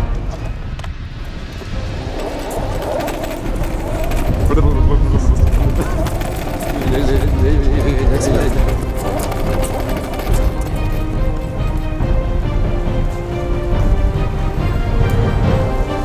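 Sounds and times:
background music: 0.0 - 16.0
voices talking: 2.0 - 12.2.

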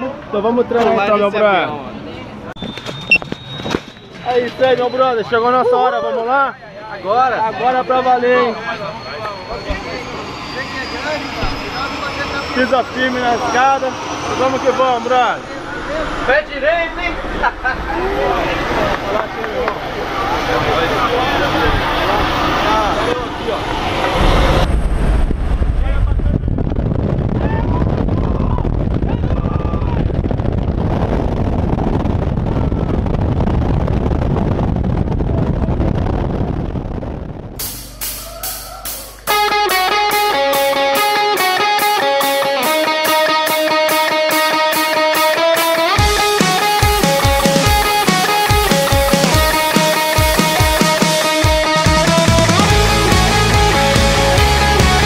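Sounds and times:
people talking and laughing: 0.0 - 24.7, 37.8 - 55.0
guitar music with steady beat: 39.2 - 55.0.

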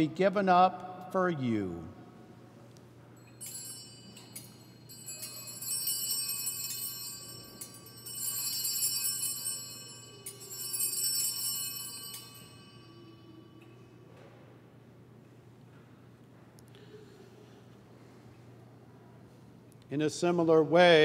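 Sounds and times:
altar bells shaken: 3.2 - 13.4.

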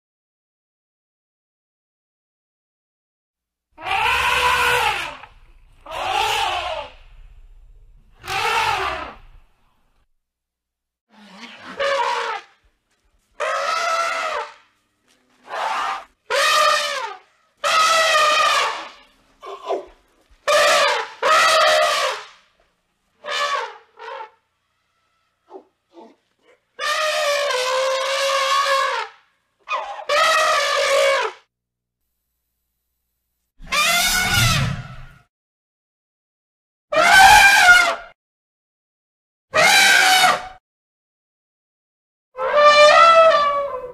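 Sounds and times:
elephant trumpeting: 3.8 - 7.2, 8.2 - 9.4, 11.1 - 12.6, 13.4 - 14.7, 15.4 - 22.3, 23.2 - 31.4, 33.6 - 35.2, 36.9 - 38.0, 39.5 - 40.5, 42.4 - 43.9.

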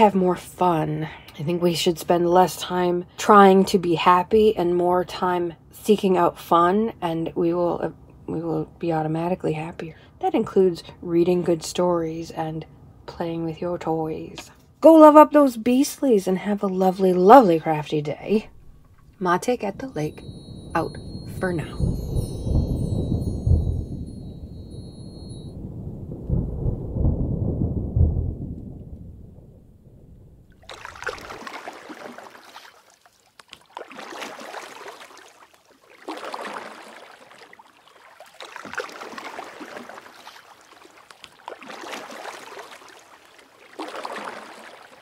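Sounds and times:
distant thunder rumbling: 18.4 - 32.0
small waves washing on shore: 30.4 - 45.0.

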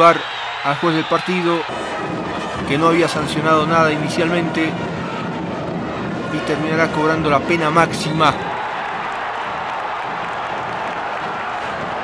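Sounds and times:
stadium crowd voices and clapping: 0.0 - 12.0.

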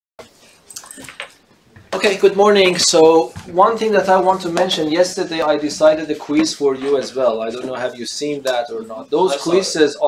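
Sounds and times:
footsteps: 0.4 - 7.8
man's voice: 1.9 - 10.0.

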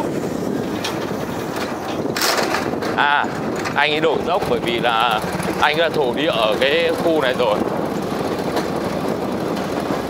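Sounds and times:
tyre and road noise: 0.0 - 10.0
wind on microphone: 0.0 - 10.0.

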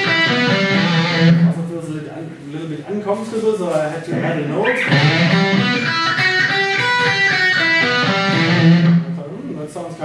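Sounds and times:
electric guitar lick: 0.0 - 1.7, 4.6 - 9.2.

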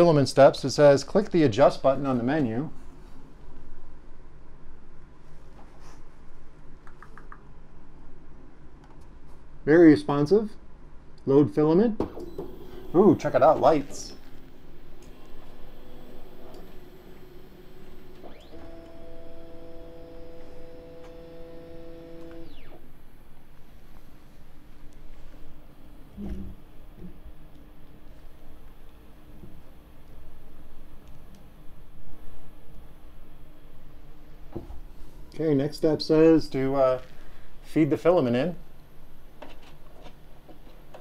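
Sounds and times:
faint steady hum: 0.0 - 41.0
stepper motor whine: 12.2 - 24.6.

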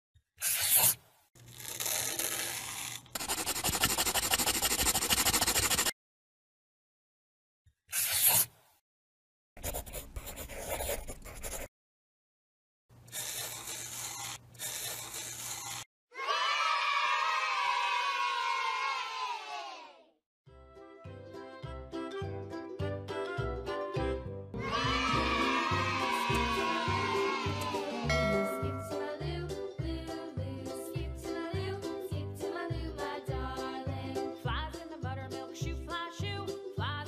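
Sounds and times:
tearing noise: 0.4 - 5.9, 7.9 - 8.5
crayon scribbling on paper: 2.0 - 5.9, 7.9 - 8.5, 9.6 - 11.7, 13.1 - 15.9
children cheering: 16.1 - 20.0, 24.6 - 28.1.

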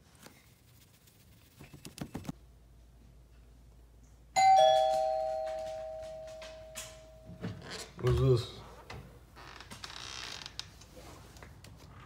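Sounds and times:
door creaking open: 4.6 - 8.4, 9.3 - 10.8.

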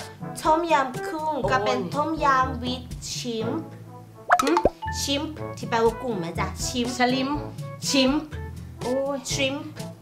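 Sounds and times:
background music: 0.0 - 10.0
cartoon blip sweeping in pitch: 4.3 - 4.9.

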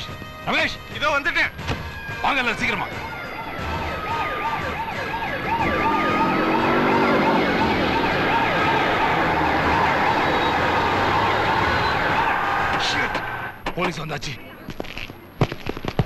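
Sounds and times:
police siren yelping: 1.9 - 13.6.

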